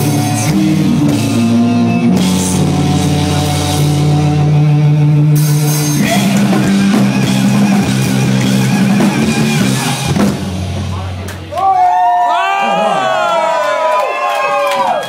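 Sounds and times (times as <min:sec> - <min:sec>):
live metal band playing: 0:00.0 - 0:11.5
crowd cheering and yelling: 0:10.9 - 0:15.0.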